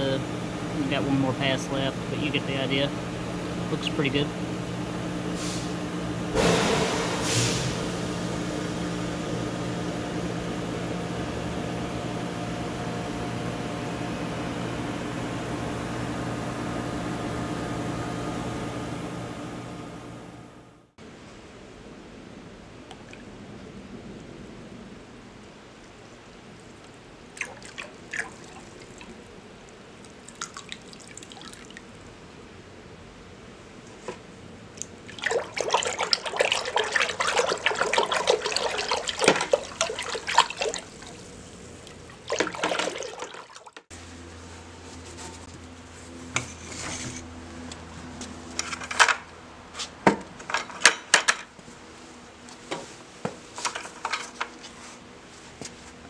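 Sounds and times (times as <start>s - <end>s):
low steady hum: 0.0s - 49.7s
liquid sloshing: 26.6s - 32.0s, 34.8s - 43.8s
liquid pouring into water: 26.8s - 29.2s, 30.0s - 32.0s, 35.0s - 43.8s.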